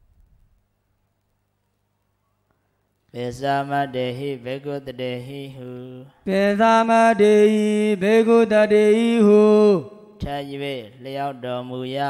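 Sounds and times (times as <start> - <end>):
man chanting scripture: 3.1 - 12.0.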